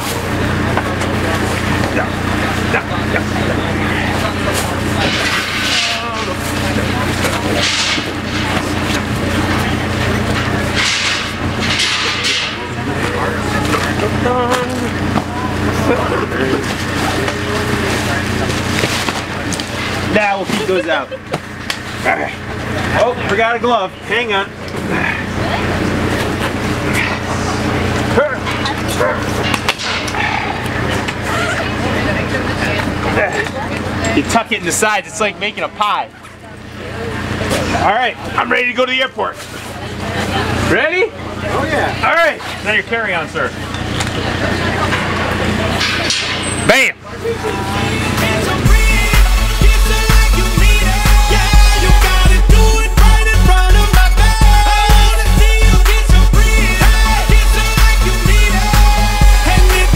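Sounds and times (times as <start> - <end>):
low hum: 0.0 - 34.2, 43.6 - 59.9
faint voices: 0.0 - 59.9
clothing and plastic bags rustling: 3.5 - 22.0.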